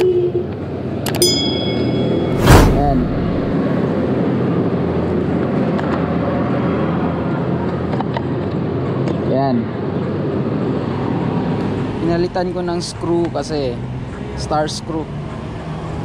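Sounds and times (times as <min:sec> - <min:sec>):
short high ding: 0:01.2 - 0:02.9
loud burst of noise: 0:02.3 - 0:03.6.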